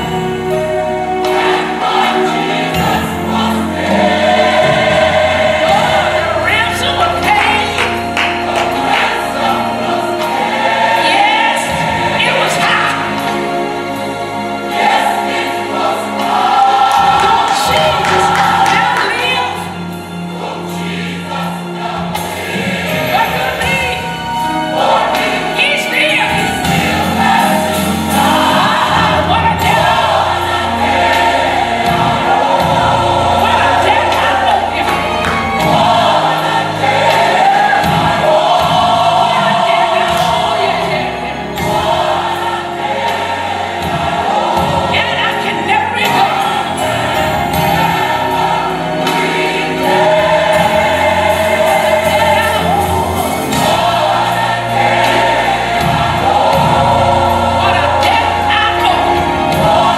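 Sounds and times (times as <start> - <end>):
gospel choir with instruments: 0.0 - 59.9.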